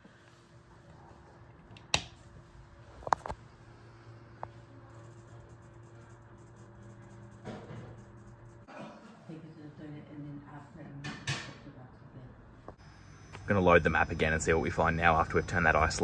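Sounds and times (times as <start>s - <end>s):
air conditioner humming: 0.0s - 16.0s
air conditioner clicks: 1.7s - 2.2s.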